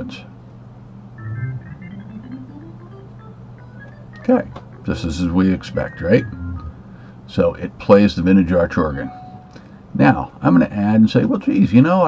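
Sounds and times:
organ notes stepping up in pitch: 0:01.0 - 0:07.1.

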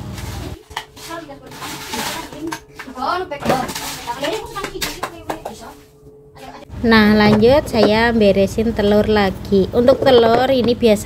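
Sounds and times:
glassware and utensils clinking: 0:00.5 - 0:05.7
people talking: 0:00.5 - 0:11.0.

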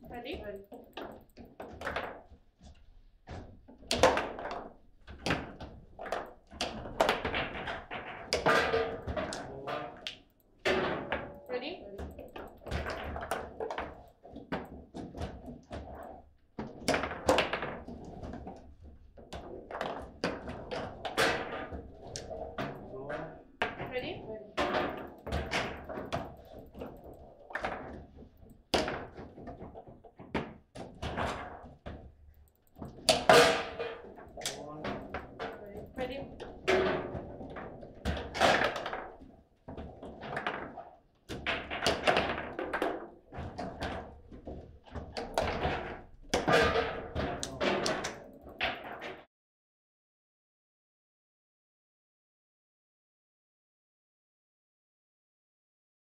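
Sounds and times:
table football rods clacking: 0:00.0 - 0:02.3, 0:03.7 - 0:18.2, 0:19.3 - 0:24.0, 0:24.6 - 0:39.2, 0:39.8 - 0:49.2.

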